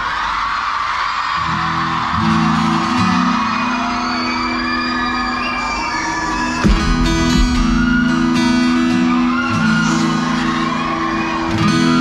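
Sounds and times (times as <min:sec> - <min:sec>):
crowd whooping and cheering: 0:00.0 - 0:12.0
guitar and keyboard chords: 0:01.6 - 0:12.0.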